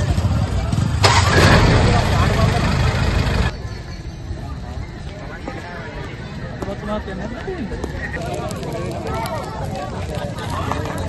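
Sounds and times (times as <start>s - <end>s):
lorry engine running: 0.0s - 3.6s.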